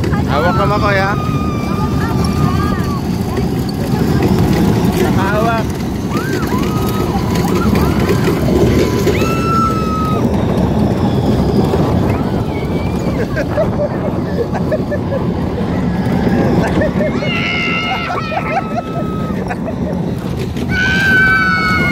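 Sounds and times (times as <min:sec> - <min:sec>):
riders screaming and shouting: 0:00.0 - 0:21.9
wind rushing over microphone: 0:00.0 - 0:21.9.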